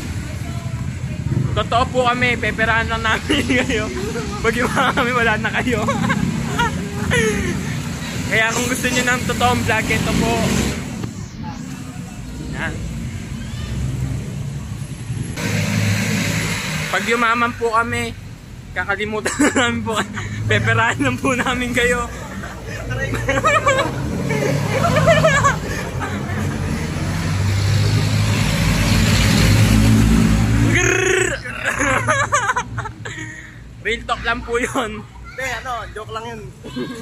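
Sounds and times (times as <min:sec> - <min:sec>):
vehicle engine rumble: 0:00.0 - 0:34.4
road noise: 0:00.0 - 0:37.0.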